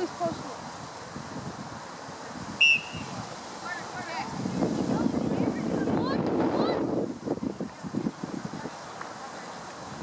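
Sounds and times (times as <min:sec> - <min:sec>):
referee's whistle blast: 0:02.6 - 0:03.1.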